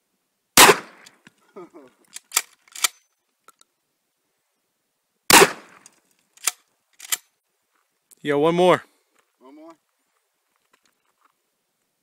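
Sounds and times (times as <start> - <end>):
shotgun shot: 0.6 - 1.1, 5.3 - 5.8.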